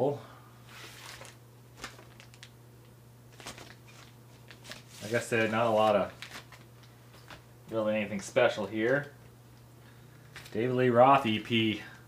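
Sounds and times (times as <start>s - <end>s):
steady low hum: 0.0s - 12.0s
paper and cardboard rustling: 0.7s - 2.5s, 3.3s - 7.4s.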